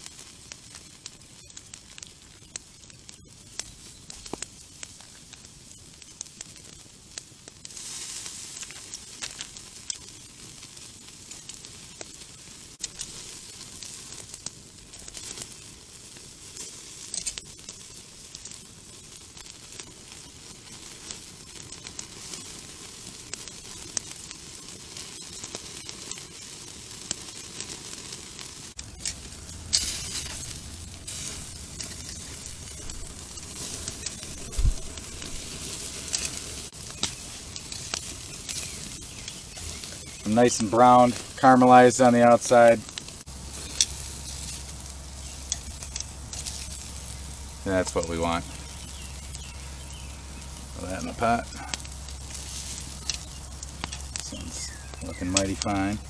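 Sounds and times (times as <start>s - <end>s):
fire pops and crackles: 0.0s - 56.0s
meat sizzling on a grill: 0.0s - 56.0s.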